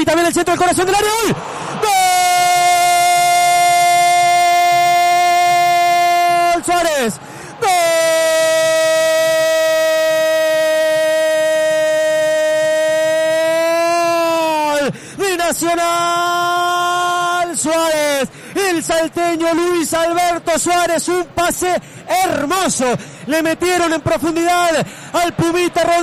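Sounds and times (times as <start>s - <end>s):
commentator's drawn-out goal cry: 0.0s - 26.0s.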